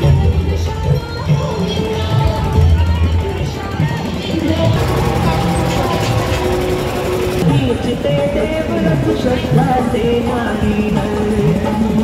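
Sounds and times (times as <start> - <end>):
engine running with rattle: 0.0 - 12.0
music: 0.0 - 12.0.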